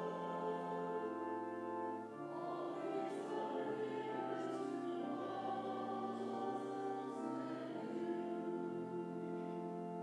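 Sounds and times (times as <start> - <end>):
choir-like hymn chords: 0.0 - 10.0.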